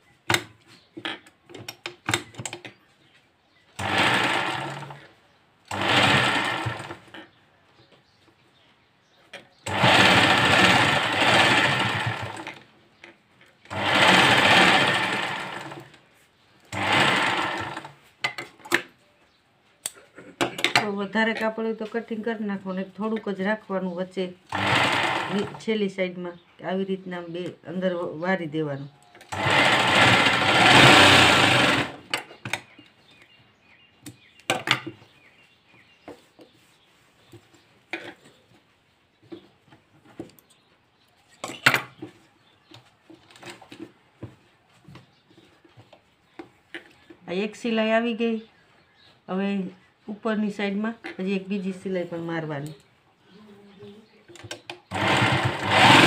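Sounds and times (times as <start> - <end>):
sewing machine stitching fabric: 3.8 - 5.1, 5.7 - 7.2, 9.6 - 12.6, 13.7 - 16.0, 16.7 - 18.0, 24.5 - 25.6, 29.3 - 32.1, 54.9 - 56.0.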